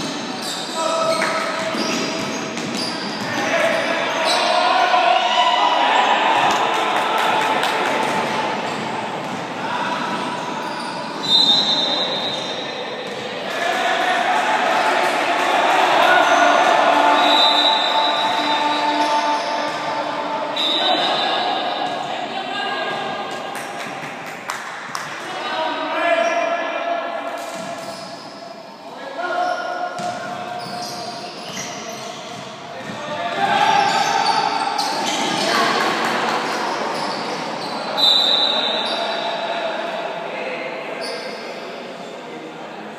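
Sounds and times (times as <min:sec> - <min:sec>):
echoing basketball game din: 0:00.0 - 0:42.9
voices in hall: 0:00.0 - 0:42.9
basketball bouncing on court: 0:01.0 - 0:03.4, 0:08.1 - 0:10.3, 0:13.0 - 0:13.3, 0:30.0 - 0:33.4
referee's whistle blast: 0:11.2 - 0:12.6, 0:17.1 - 0:19.6, 0:20.5 - 0:21.7, 0:38.0 - 0:39.1.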